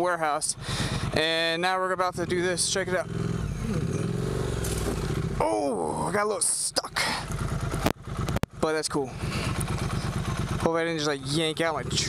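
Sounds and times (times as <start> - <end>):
motorcycle engine pulling low revs: 2.0 - 6.0, 7.0 - 12.0.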